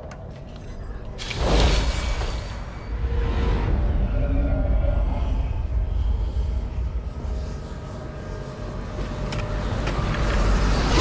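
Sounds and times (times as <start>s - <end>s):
low rumbling drone: 2.5s - 11.0s.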